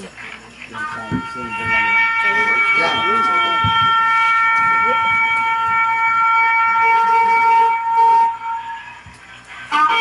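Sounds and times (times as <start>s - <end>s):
shofar blast: 0.8s - 9.0s, 9.6s - 10.0s.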